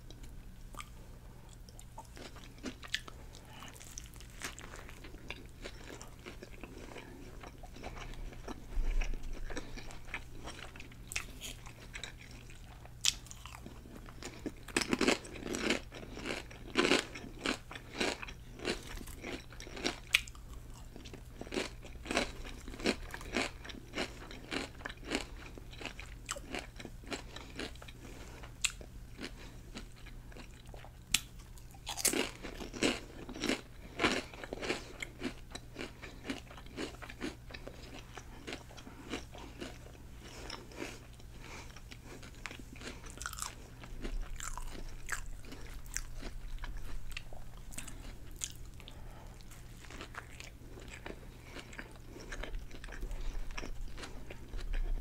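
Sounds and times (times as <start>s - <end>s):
wet chewing: 0.1s - 55.0s
crisp chip crunches: 31.2s - 41.1s, 42.0s - 48.7s.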